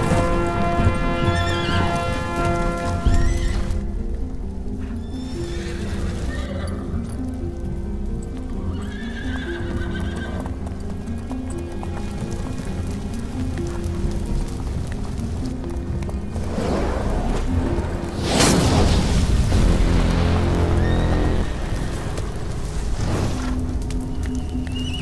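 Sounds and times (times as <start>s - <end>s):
horses neighing: 0.0s - 4.0s, 4.8s - 7.5s, 8.3s - 18.2s, 20.6s - 25.0s
horse hoofbeats: 0.0s - 18.4s, 19.6s - 25.0s
film score music: 0.0s - 25.0s.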